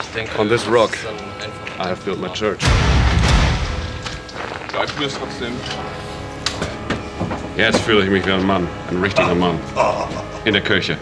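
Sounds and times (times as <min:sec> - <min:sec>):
background music: 0:00.0 - 0:11.0
loud deep boom: 0:02.6 - 0:04.8.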